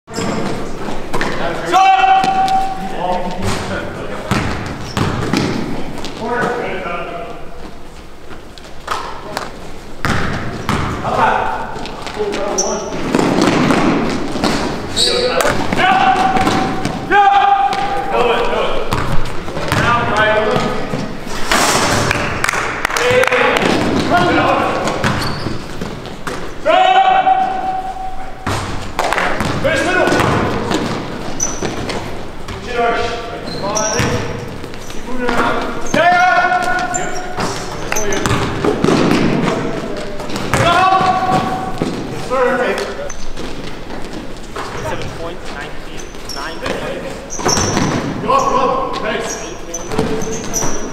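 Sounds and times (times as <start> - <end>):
players calling out: 0.1 - 8.2, 10.6 - 21.2, 22.0 - 50.9
basketball bouncing on court: 4.2 - 6.2, 8.9 - 18.1, 18.8 - 21.2, 23.1 - 26.6, 27.6 - 32.7, 33.8 - 42.2, 46.7 - 48.2.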